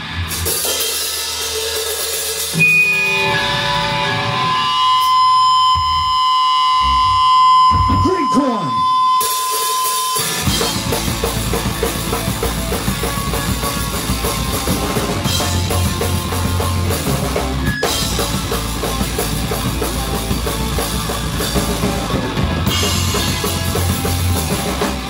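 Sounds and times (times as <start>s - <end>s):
punk rock band playing: 0.0s - 25.0s
wavering pitch sweep: 2.6s - 10.4s
sustained held tones: 2.6s - 10.9s.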